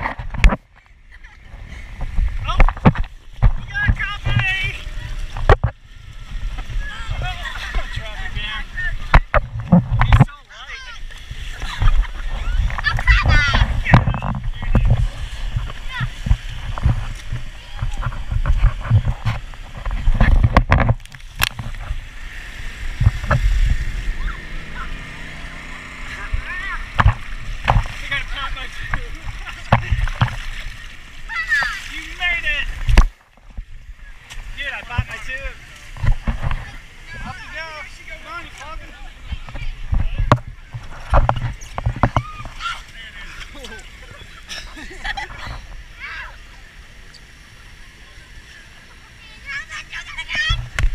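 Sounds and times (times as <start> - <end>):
tube sliding down water slide: 0.0 - 50.9.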